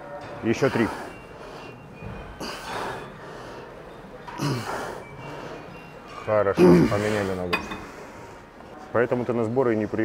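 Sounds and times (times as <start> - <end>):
man breathing hard: 0.6 - 5.7.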